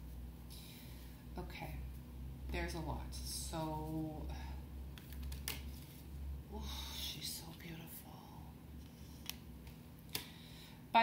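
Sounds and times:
person whispering: 6.5 - 8.6.

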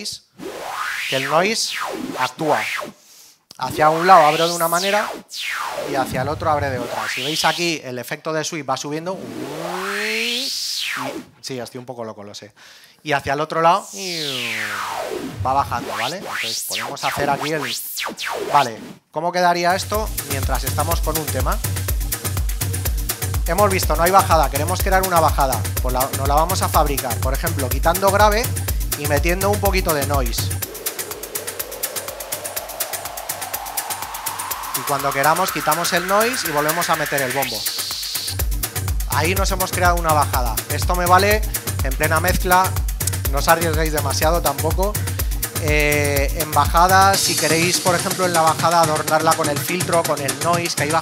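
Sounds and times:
filtered white noise sweep: 0.4 - 3.0, 3.6 - 7.8, 9.0 - 11.4, 13.8 - 19.0, 19.8 - 45.0
rising hiss noise effect: 0.4 - 3.0, 3.6 - 7.8, 9.0 - 11.3, 13.8 - 19.0, 29.8 - 38.8, 39.7 - 43.7, 47.1 - 48.5
techno track hi-hats ticking: 3.5 - 5.0, 5.9 - 7.8, 15.5 - 18.6, 19.7 - 51.0
low tone gliding upward: 9.2 - 11.2, 13.9 - 18.6.

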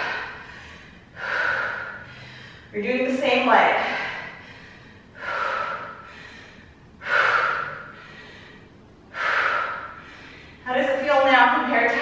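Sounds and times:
woman breathing hard: 0.0 - 10.7.

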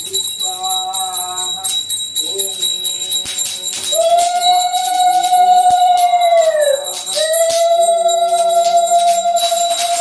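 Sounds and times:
hand bell ringing: 0.0 - 10.0.

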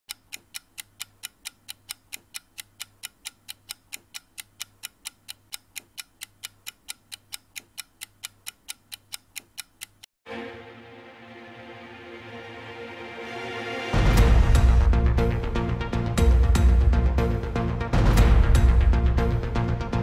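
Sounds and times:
clock ticking: 0.1 - 10.1.

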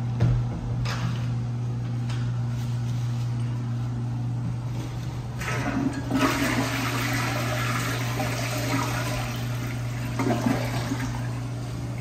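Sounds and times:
toilet flushing: 5.3 - 12.0.

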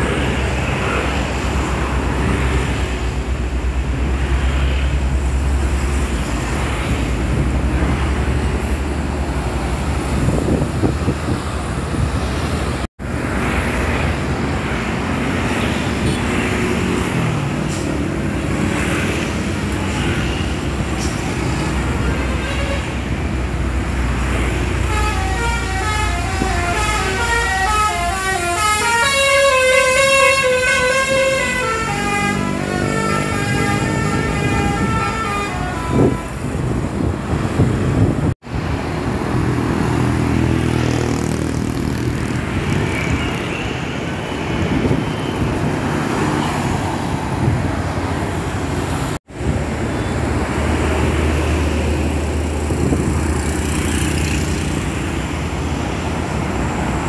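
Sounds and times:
road traffic passing: 0.0 - 57.0
bus horn playing a tune: 22.0 - 23.0, 24.8 - 36.7.

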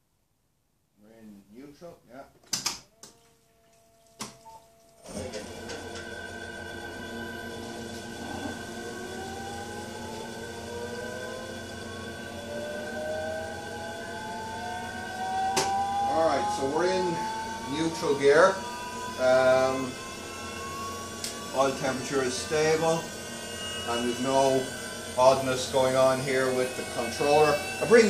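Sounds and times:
sharp clicks: 2.4 - 3.2
electric motor whine: 2.8 - 28.0.

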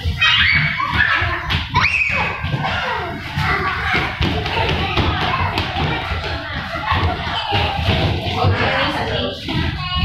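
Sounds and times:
children's voices: 0.0 - 10.0.

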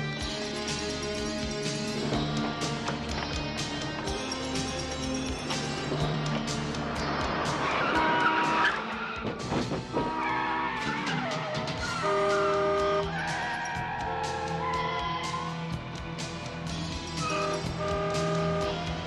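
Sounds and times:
car tyres squealing: 6.2 - 15.7, 17.2 - 18.7.

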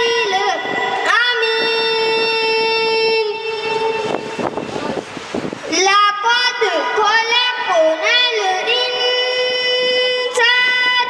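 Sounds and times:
boy chanting a long note: 0.0 - 5.0, 5.7 - 11.0.

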